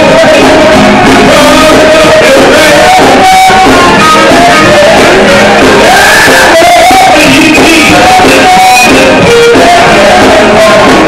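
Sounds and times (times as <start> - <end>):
electric guitar: 0.0 - 11.0
gospel group singing: 0.0 - 11.0.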